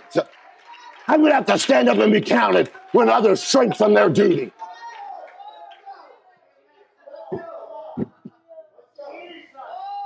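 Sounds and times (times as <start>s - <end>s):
dull thumps: 7.3s - 8.3s.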